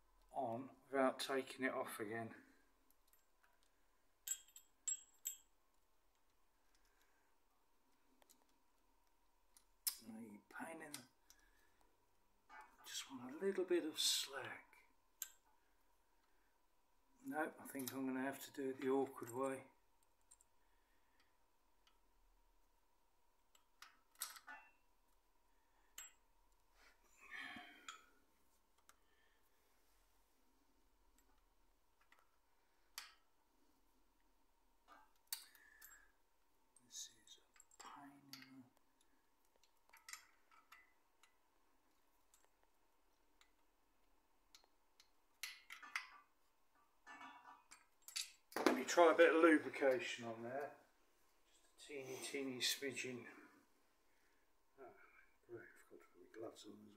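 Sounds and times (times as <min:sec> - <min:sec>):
metal chain clicks and clinks: 0:03.0 - 0:05.6, 0:23.5 - 0:24.8, 0:39.5 - 0:41.3, 0:44.5 - 0:46.3, 0:47.0 - 0:48.6.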